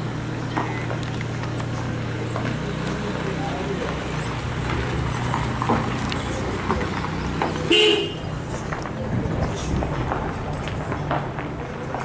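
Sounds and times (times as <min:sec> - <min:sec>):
vehicle engine humming: 0:00.0 - 0:12.0
vehicle horn toot: 0:07.7 - 0:08.3.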